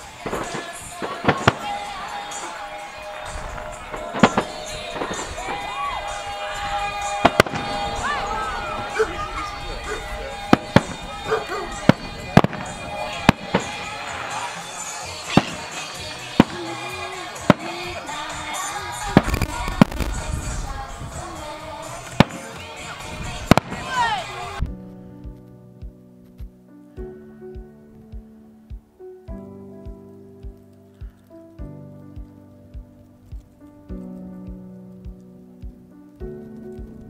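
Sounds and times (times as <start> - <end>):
fireworks bursting with sharp bangs: 0.0 - 24.7.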